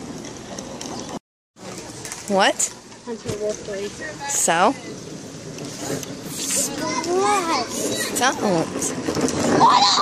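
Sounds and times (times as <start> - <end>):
child's high voice gliding: 6.4 - 8.3.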